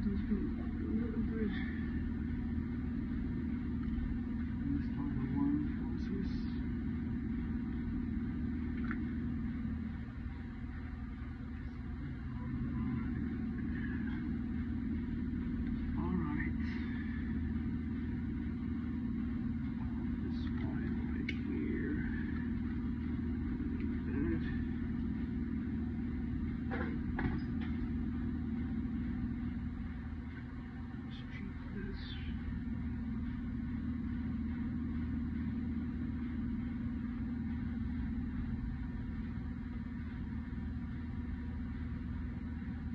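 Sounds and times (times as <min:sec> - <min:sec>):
low hum of machinery: 0:00.0 - 0:42.9.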